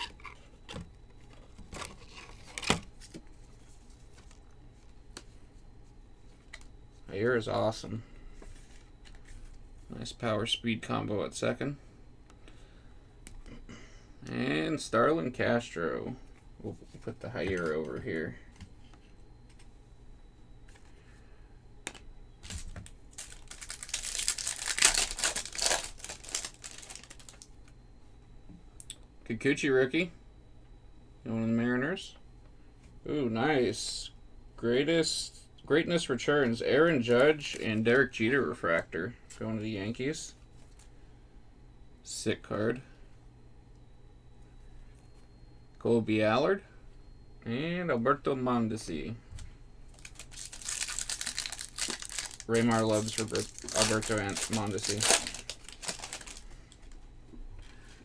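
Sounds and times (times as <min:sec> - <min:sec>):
card sleeves clicking and rustling: 0:21.9 - 0:27.4, 0:50.0 - 0:57.0
foil wrapper tearing and crinkling: 0:22.4 - 0:27.4, 0:49.9 - 0:56.4.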